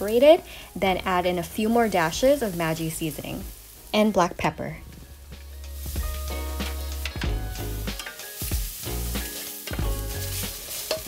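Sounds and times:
food sizzling in a frying pan: 0.0s - 11.0s
wooden spatula scraping a pan: 8.1s - 11.0s.

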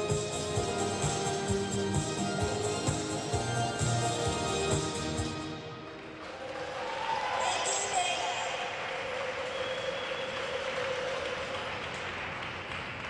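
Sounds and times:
audience applause: 3.4s - 13.0s.

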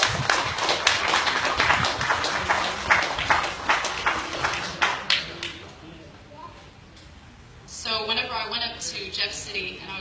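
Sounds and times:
audience clapping: 0.0s - 5.8s.

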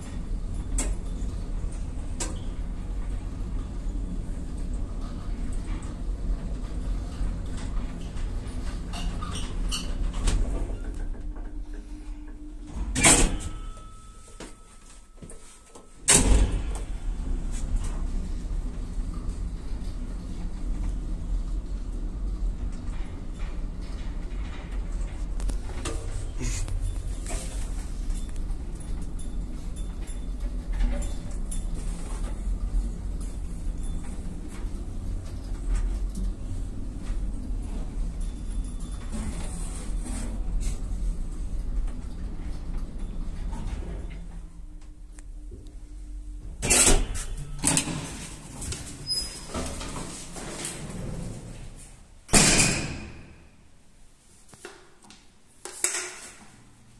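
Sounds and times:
lift travelling low rumble: 0.0s - 15.0s, 16.0s - 52.2s
metal elevator door clunk: 7.4s - 18.2s, 46.2s - 53.6s.

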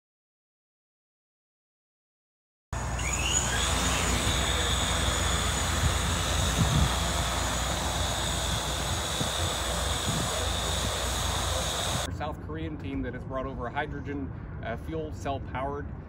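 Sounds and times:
drone rotors whining: 2.8s - 12.1s.

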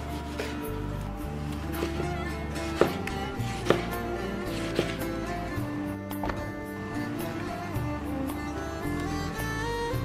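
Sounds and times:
background instrumental music: 0.0s - 10.0s
knife slicing onto cutting board: 1.7s - 5.2s.

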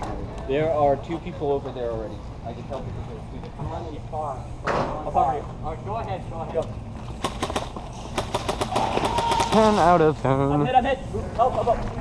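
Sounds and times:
airsoft guns firing: 7.2s - 9.9s.

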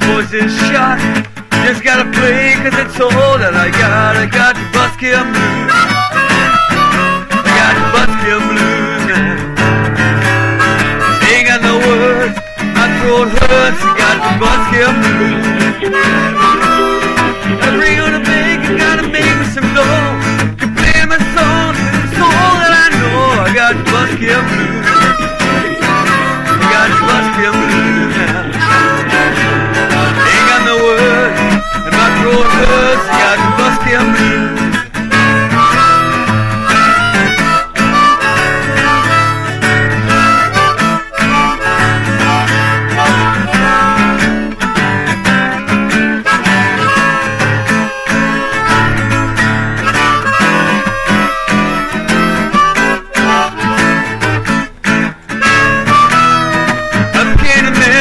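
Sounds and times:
harmonica playing: 0.0s - 58.0s
strummed acoustic guitar: 0.0s - 58.0s.

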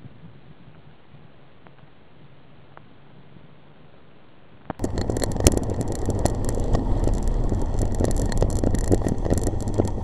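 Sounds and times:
bicycle rumble and rattles: 4.8s - 10.0s
car passing: 4.8s - 10.0s.

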